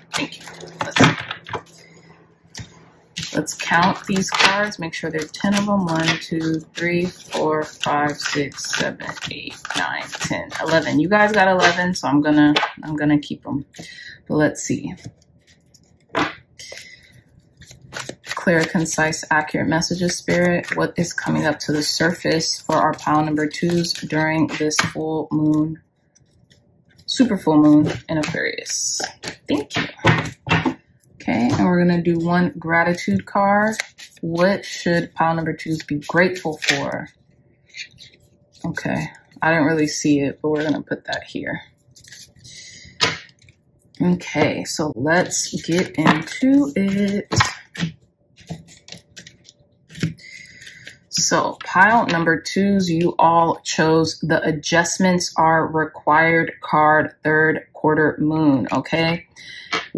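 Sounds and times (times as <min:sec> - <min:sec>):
cards rustling: 0:02.6 - 0:11.9, 0:15.4 - 0:25.0, 0:32.9 - 0:37.0, 0:41.8 - 0:43.6, 0:45.2 - 0:51.3
cards shuffling: 0:02.6 - 0:11.9, 0:15.4 - 0:25.0, 0:33.6 - 0:37.0, 0:41.9 - 0:43.6, 0:45.2 - 0:51.3.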